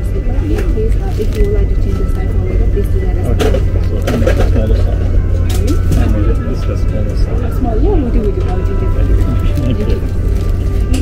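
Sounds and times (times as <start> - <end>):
voice: 0.0 - 10.1
airplane cabin hum: 0.0 - 11.0
plastic bag rustling: 8.2 - 11.0.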